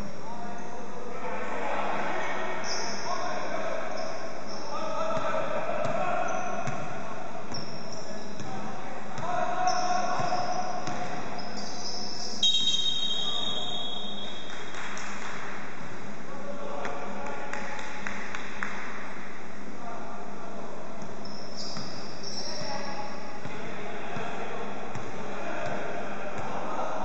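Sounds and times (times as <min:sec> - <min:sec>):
players calling out: 0:01.2 - 0:14.2, 0:21.2 - 0:27.0
basketball bouncing: 0:06.6 - 0:06.9, 0:08.4 - 0:11.3, 0:24.9 - 0:25.8
referee's whistle: 0:11.4 - 0:14.4.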